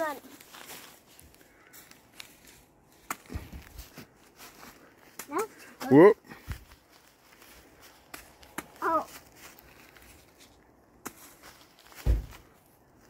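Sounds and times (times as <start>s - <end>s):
beanbags tapping on leaves: 6.3s - 12.6s
soft thud: 12.0s - 12.5s.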